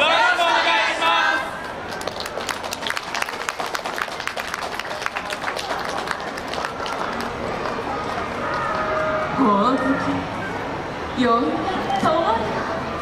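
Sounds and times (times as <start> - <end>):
audience clapping: 1.6 - 8.9.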